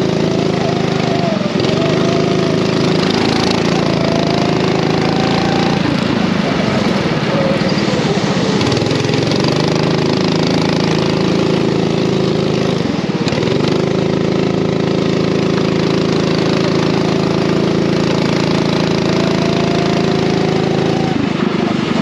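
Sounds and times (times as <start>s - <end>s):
racing kart engine: 0.0s - 22.0s.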